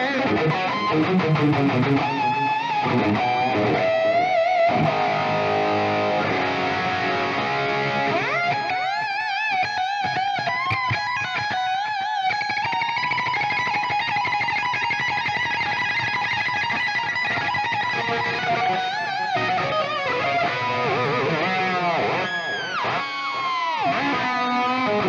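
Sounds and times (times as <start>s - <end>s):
electric guitar lead: 0.0s - 25.0s.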